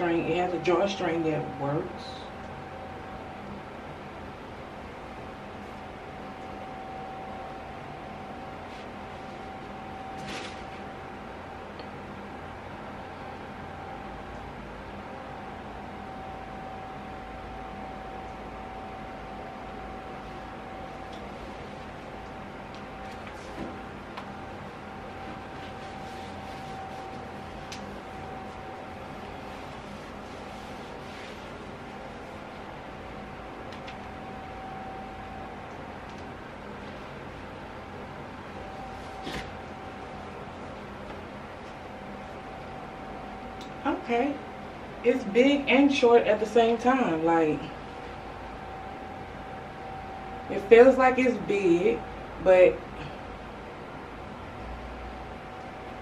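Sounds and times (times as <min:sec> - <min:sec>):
electric fan whooshing hiss: 0:00.0 - 0:56.0
clothes rustling: 0:25.2 - 0:32.4.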